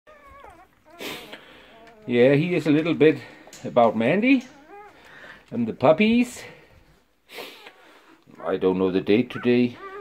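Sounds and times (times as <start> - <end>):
puppies whimpering: 0.1 - 6.7, 7.4 - 10.0.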